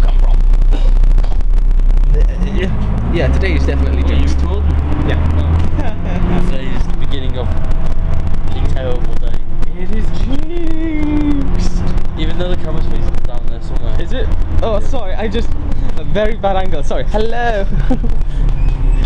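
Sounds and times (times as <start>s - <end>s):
people talking: 0.0s - 7.6s, 8.4s - 19.0s
bus engine low rumble: 0.0s - 19.0s.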